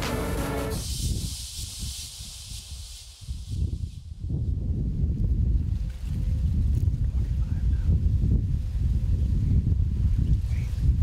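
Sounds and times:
dry grain heads rustling in wind: 0.7 - 11.0
wind buffeting microphone: 3.3 - 11.0.

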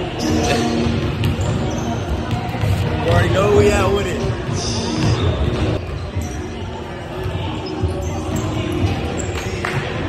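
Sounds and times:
basketballs bouncing on hardwood: 1.0 - 5.8.

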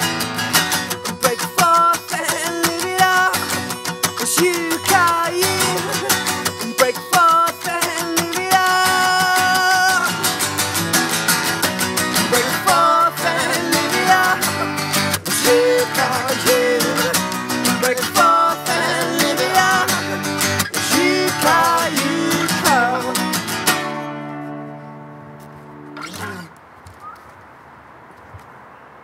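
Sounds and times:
acoustic guitars strummed: 0.0 - 26.6
person singing: 1.1 - 10.4, 12.1 - 23.5.

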